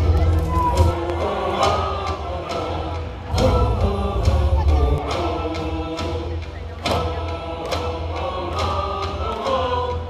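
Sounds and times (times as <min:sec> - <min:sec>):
crowd singing in unison: 0:00.0 - 0:10.0
music: 0:00.0 - 0:10.0.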